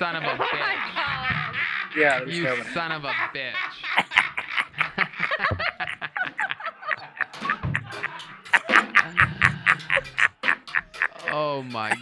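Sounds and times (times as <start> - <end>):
men laughing: 0.0 - 12.0.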